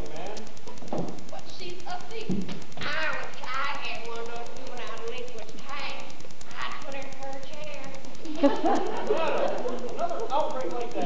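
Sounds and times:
fast even ticking: 0:00.0 - 0:11.0.

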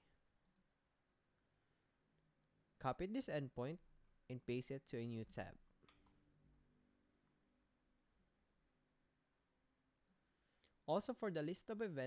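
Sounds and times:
person speaking: 0:02.8 - 0:05.6.

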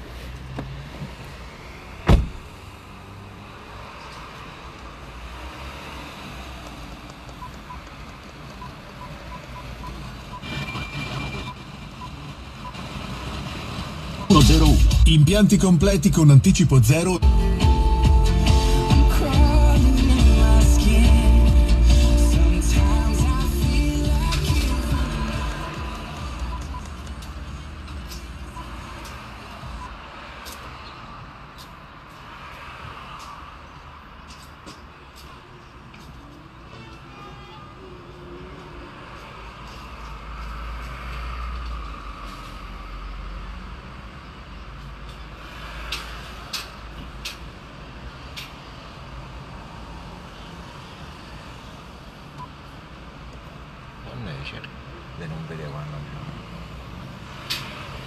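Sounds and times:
radio music through car speakers: 0:07.3 - 0:30.2.

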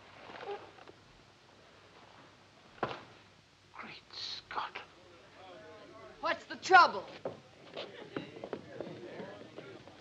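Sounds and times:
person whispering: 0:03.8 - 0:04.9.

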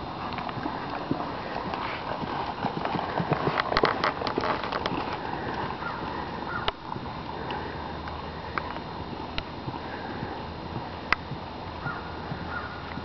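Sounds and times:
hoofbeats on dirt: 0:00.0 - 0:13.0.

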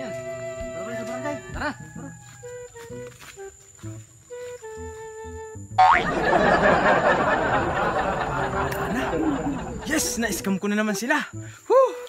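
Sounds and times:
background music with low pulse: 0:00.0 - 0:12.0.

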